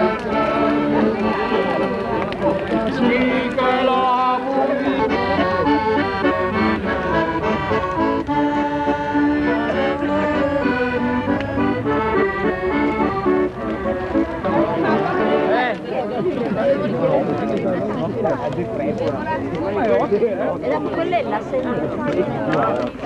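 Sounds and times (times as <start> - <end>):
people talking: 0.0 - 8.3, 9.3 - 12.8, 13.6 - 23.0
accordion playing a tune: 0.0 - 17.6, 20.0 - 22.1.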